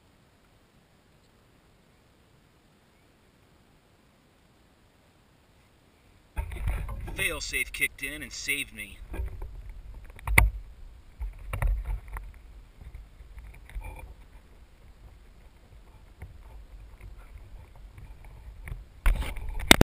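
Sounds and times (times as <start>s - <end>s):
wind rumble on microphone: 6.4s - 7.2s, 9.0s - 19.8s
microphone handling noise: 6.4s - 8.2s, 8.9s - 19.8s.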